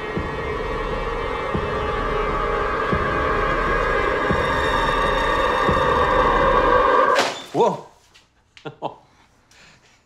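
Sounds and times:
low heartbeat-like thuds: 0:00.0 - 0:06.4
tense film score: 0:00.0 - 0:07.2.

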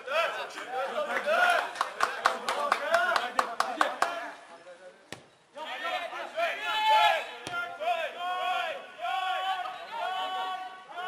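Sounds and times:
fast hand-clapping: 0:01.5 - 0:04.2
voices shouting: 0:05.6 - 0:11.0.

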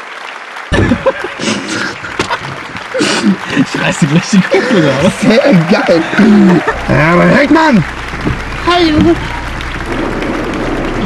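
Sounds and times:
faint voices: 0:00.7 - 0:10.2
car road and engine noise: 0:03.6 - 0:11.0.

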